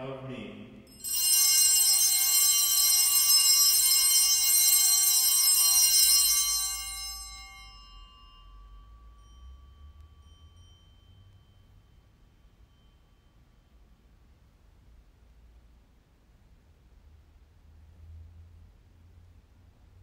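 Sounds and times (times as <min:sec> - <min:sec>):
altar bells ringing: 0:00.9 - 0:14.4.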